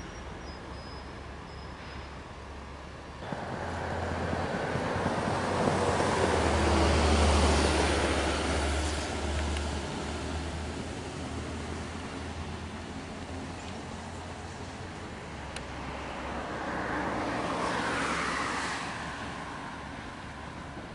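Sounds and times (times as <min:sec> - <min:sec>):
road vehicle passing by: 0:03.1 - 0:20.9.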